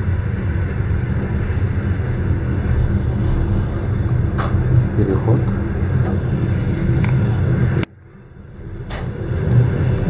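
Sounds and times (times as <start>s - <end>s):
train running rumble: 0.0s - 10.0s.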